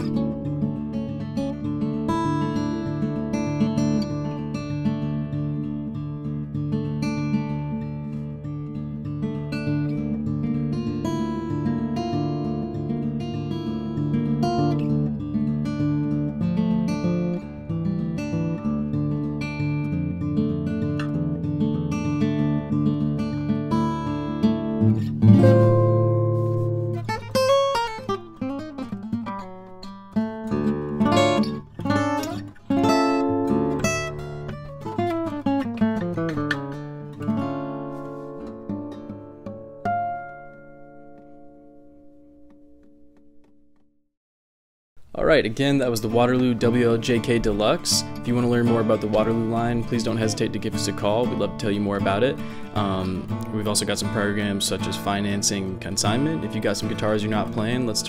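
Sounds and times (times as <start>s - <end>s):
acoustic guitar playing: 0.0s - 44.0s, 45.0s - 58.0s.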